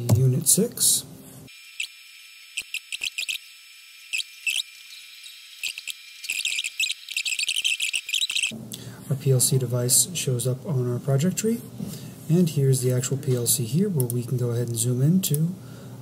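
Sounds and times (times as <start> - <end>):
high-pitched chirping clicks: 2.6 - 3.5, 4.1 - 8.6.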